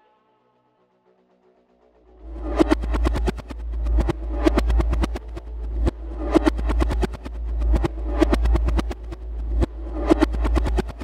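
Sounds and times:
deep bass drone: 0:01.4 - 0:11.0.

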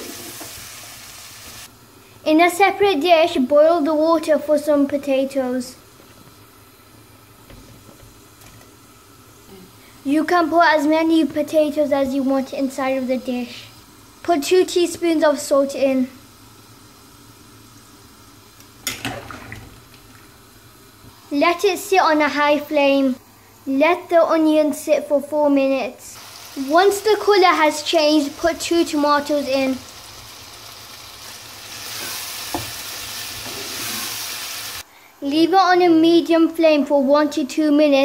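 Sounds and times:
onions sizzling in hot oil: 0:00.0 - 0:02.6, 0:05.2 - 0:19.2, 0:26.2 - 0:34.9.

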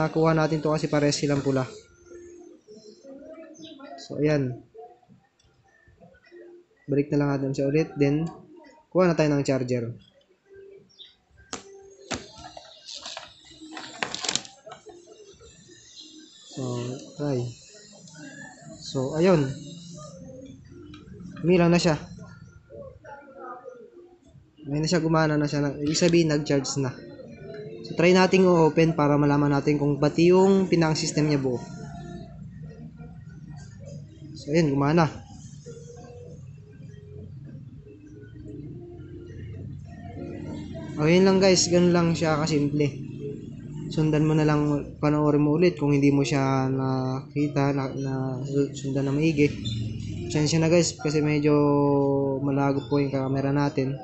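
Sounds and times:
faint music from a speaker: 0:00.0 - 0:54.0.

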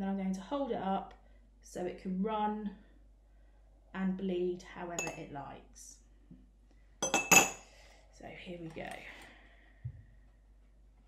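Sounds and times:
metal spoon clinking on surface: 0:05.0 - 0:05.2, 0:07.0 - 0:07.6.

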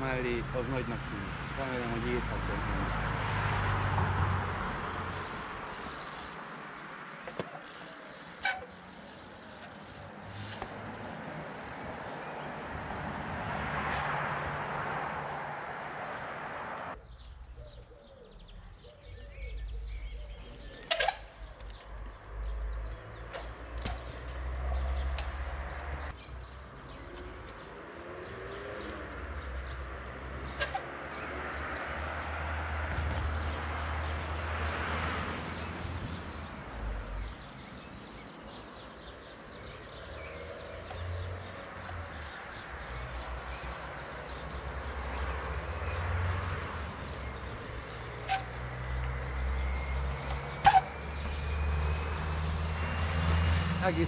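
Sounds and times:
road traffic passing: 0:00.0 - 0:54.0.

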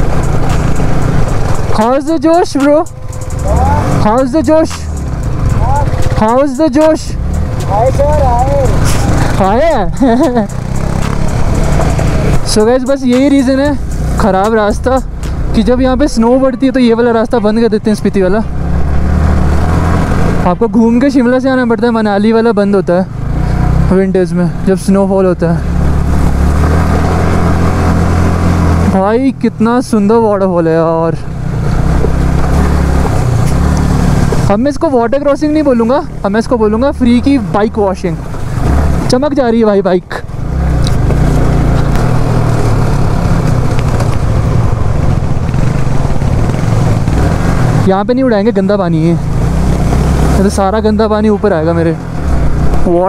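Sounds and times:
motorcycle engine rumbling: 0:00.0 - 0:53.0
wind and tyre noise: 0:00.0 - 0:53.0
person speaking wavering phrases: 0:03.4 - 0:04.8, 0:05.6 - 0:10.0.

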